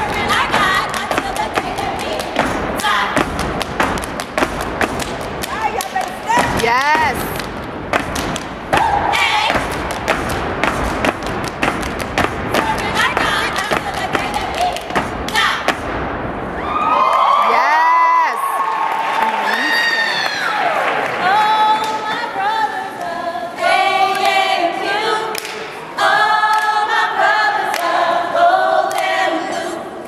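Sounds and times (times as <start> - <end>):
women singing a chant: 0.0 - 3.3, 8.7 - 9.7, 12.5 - 15.7, 21.2 - 30.0
stomping: 0.0 - 16.5
hands clapping: 0.1 - 8.9, 25.3 - 25.7, 28.9 - 29.1.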